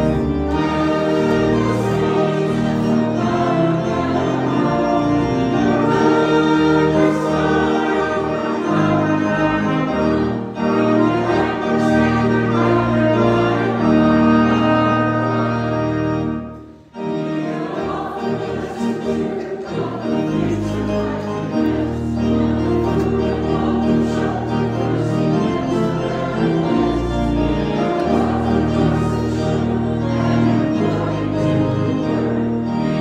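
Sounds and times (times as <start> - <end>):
choir singing: 0.0 - 33.0
hymn chords on keyboard and trumpets: 0.0 - 33.0.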